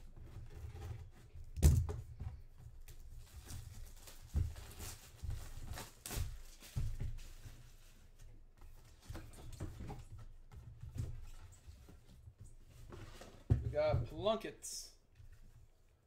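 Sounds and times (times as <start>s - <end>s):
plastic wrap crinkling: 3.2s - 7.4s.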